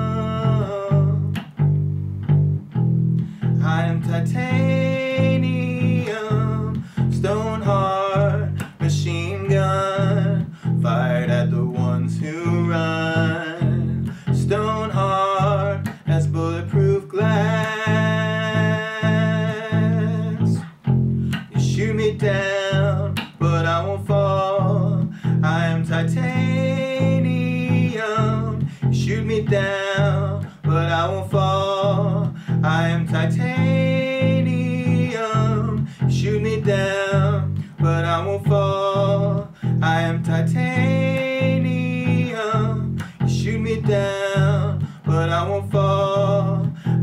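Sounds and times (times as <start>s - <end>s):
man singing: 0.0s - 1.6s, 3.3s - 47.0s
electric bass guitar playing low notes: 0.0s - 47.0s.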